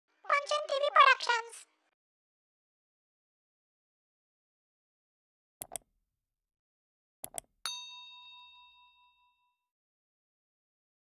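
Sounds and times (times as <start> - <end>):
bell-like notification ding: 7.7 - 9.7.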